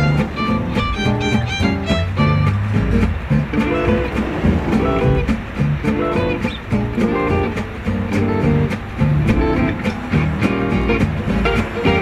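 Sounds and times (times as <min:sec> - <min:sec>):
plucked string background music: 0:00.0 - 0:12.0.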